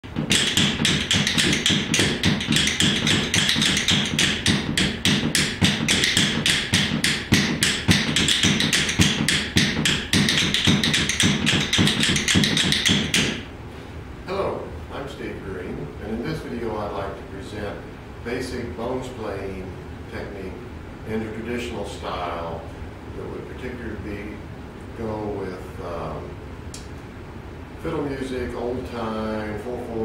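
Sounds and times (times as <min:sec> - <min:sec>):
rhythm bones clicking: 0:00.0 - 0:13.5.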